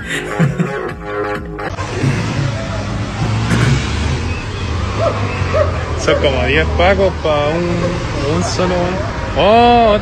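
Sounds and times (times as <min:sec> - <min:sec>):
laughter: 0:00.0 - 0:00.9
vehicle engine running: 0:01.6 - 0:10.0.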